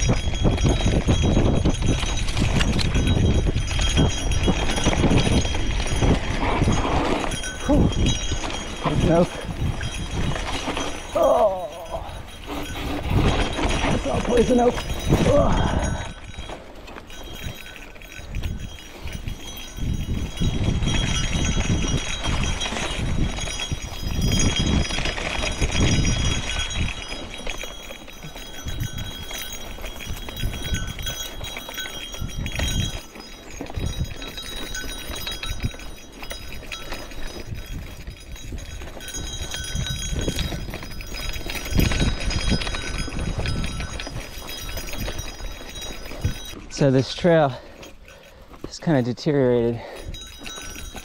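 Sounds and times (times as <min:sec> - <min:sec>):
bike rumbling over dirt trail: 0:00.0 - 0:47.2.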